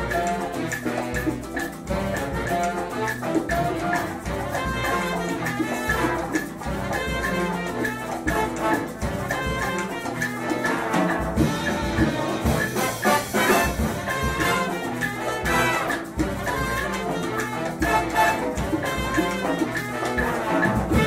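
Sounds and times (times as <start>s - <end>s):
brass section melody: 0.0s - 21.0s
latin percussion: 0.0s - 21.0s.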